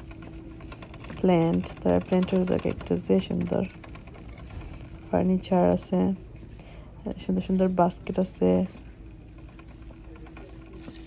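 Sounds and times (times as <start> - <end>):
faint steady hum: 0.0 - 11.0
woman speaking: 1.1 - 3.7, 5.1 - 6.2, 7.0 - 8.8.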